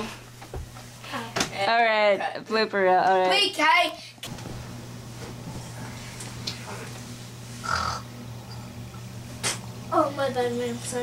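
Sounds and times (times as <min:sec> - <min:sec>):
steady low hum: 0:03.5 - 0:11.0.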